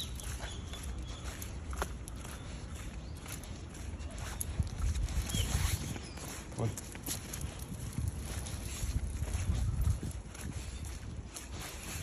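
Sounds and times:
footsteps on wet street: 0:00.0 - 0:12.0.

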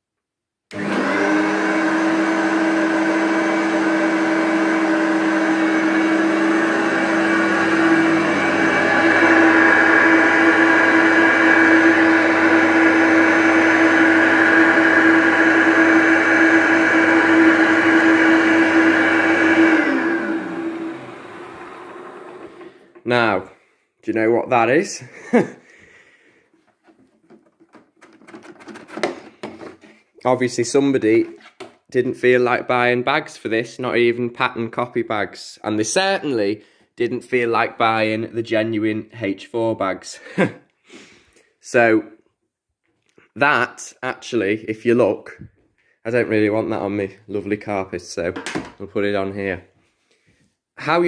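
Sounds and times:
vacuum cleaner running: 0:00.7 - 0:23.3.

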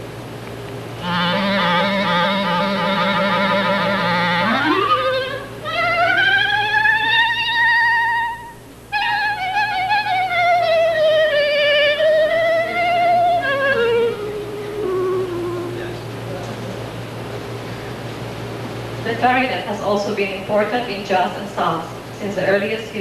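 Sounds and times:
clarinet glissando: 0:01.0 - 0:16.1.

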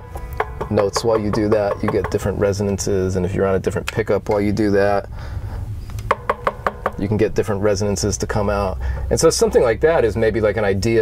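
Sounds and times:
guitar strings ringing: 0:00.0 - 0:02.4.

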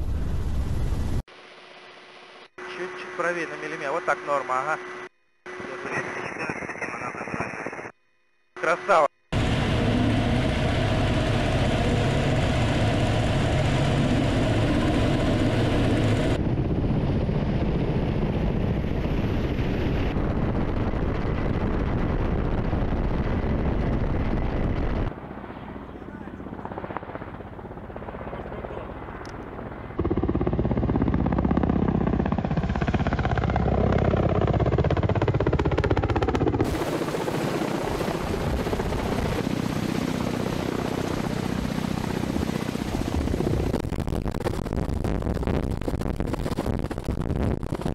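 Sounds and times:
helicopter rotors and engines: 0:00.0 - 0:07.9, 0:08.6 - 0:47.9.

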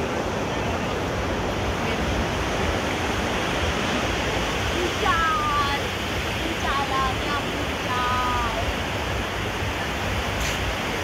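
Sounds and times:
surf washing onto beach: 0:00.0 - 0:11.0.

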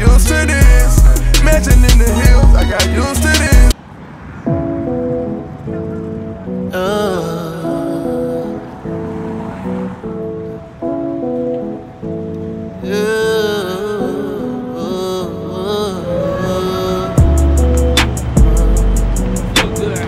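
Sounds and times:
slow background music: 0:04.5 - 0:20.0.

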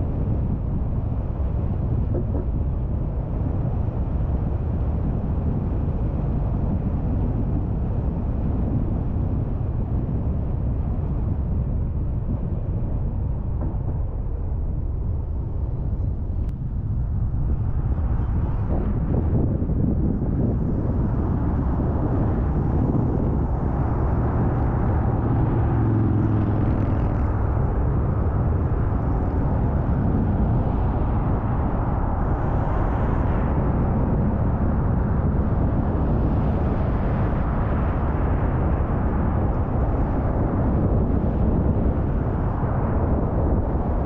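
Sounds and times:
car road and engine noise: 0:00.0 - 0:44.0
deeper engine hum: 0:00.0 - 0:44.0.

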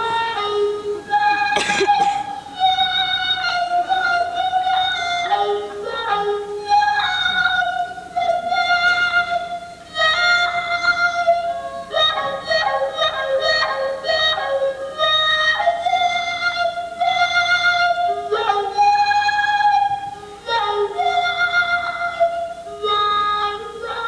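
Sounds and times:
mouth-shaped violin notes: 0:00.0 - 0:24.0.

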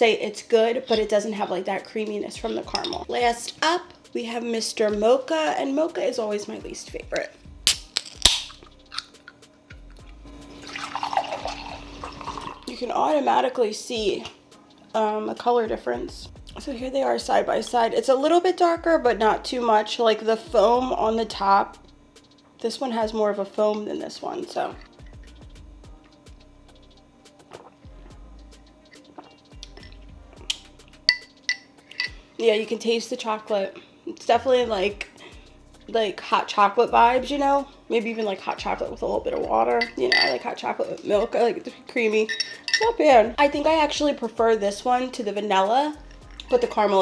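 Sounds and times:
soft background music: 0:00.0 - 0:47.0
can snapped open with hiss: 0:07.7 - 0:09.4
liquid pouring into a mug: 0:10.5 - 0:12.7
metal straw clinking on glass: 0:31.1 - 0:32.2, 0:39.8 - 0:40.5, 0:42.2 - 0:43.0.

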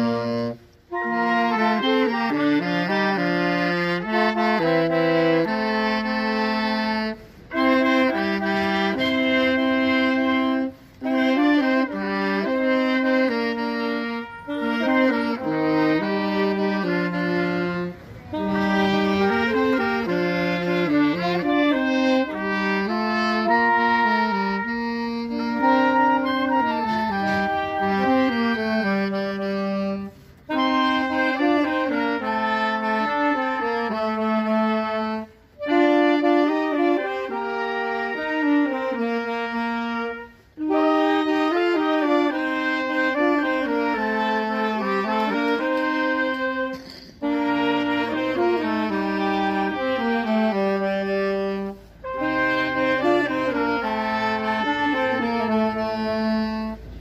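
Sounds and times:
clarinet: 0:00.0 - 0:57.0
saxophone: 0:00.0 - 0:57.0
trumpet: 0:00.0 - 0:57.0.

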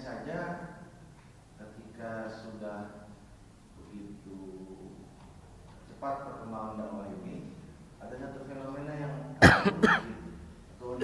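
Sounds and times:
man coughing: 0:09.4 - 0:10.2.

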